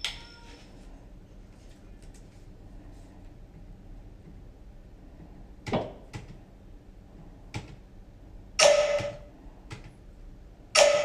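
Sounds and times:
loud ringing hit: 0:08.6 - 0:09.3, 0:10.8 - 0:11.0.

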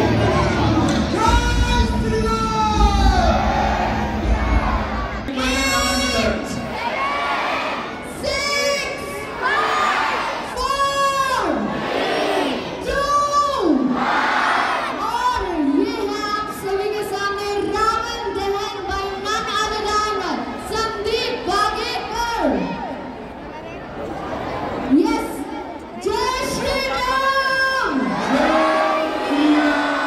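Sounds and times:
crowd shouting and cheering: 0:00.0 - 0:30.0.

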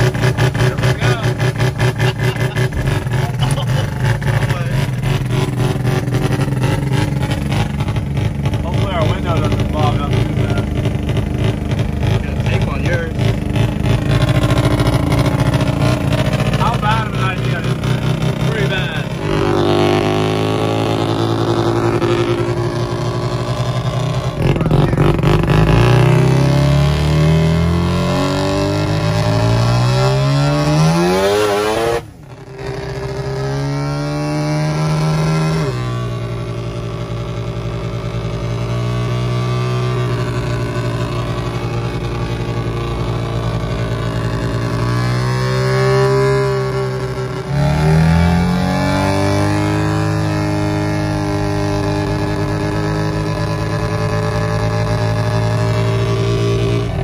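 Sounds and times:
van engine running under load: 0:00.0 - 0:57.0.

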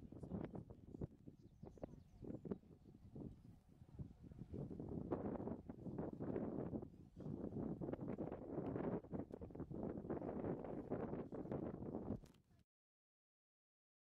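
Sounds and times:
wind buffeting microphone: 0:00.0 - 0:12.3.

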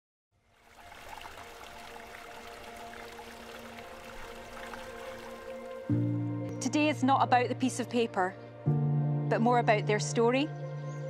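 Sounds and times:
water splashing into a pool: 0:00.5 - 0:05.9
soft music with held notes: 0:01.4 - 0:11.0.

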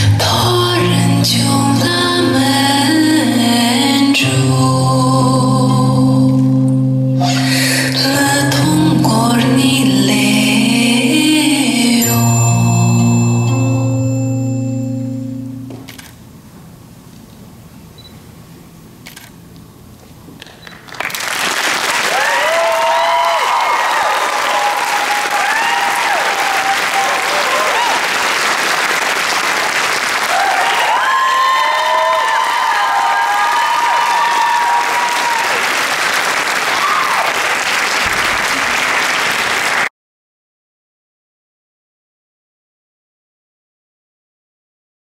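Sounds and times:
audience applause: 0:20.4 - 0:39.9
crowd whooping and shouting: 0:21.9 - 0:28.3, 0:30.2 - 0:35.8, 0:36.6 - 0:37.5.

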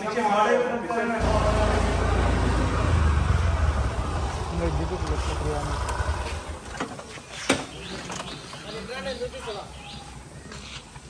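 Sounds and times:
motorcycle engines rumbling: 0:01.2 - 0:11.0.

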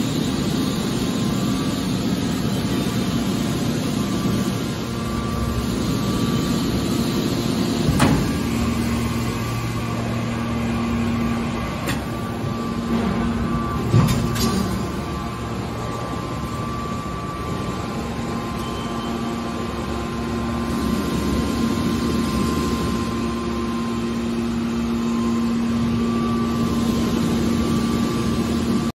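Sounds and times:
hydraulic motor and pump humming: 0:00.0 - 0:28.9.

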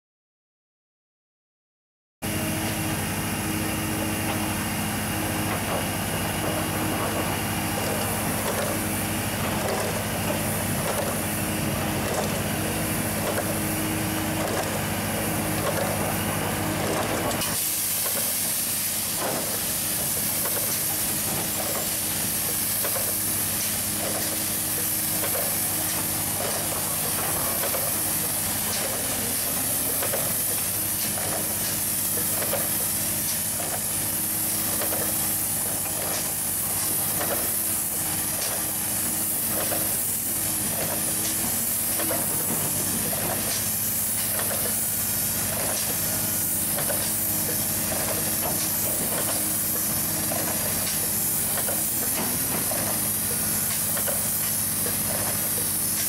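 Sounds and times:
machine engine humming: 0:02.3 - 0:56.0
spray gun hissing: 0:03.4 - 0:56.0.

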